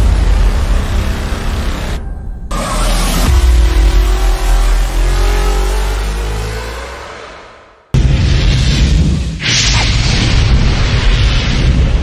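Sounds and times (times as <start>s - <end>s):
deep rumble: 0.0s - 6.1s
slowly rising tone: 0.0s - 7.7s.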